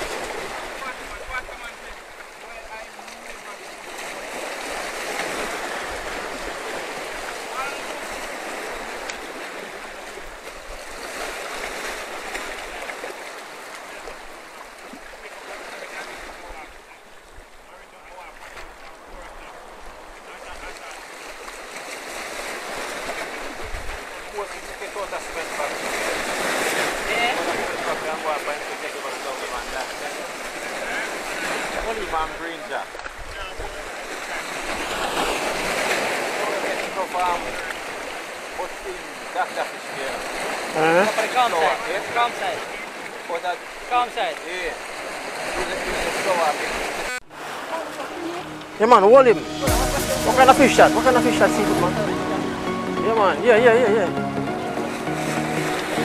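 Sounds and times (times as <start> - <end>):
surf breaking against rocks: 0.0 - 16.9, 18.1 - 52.3.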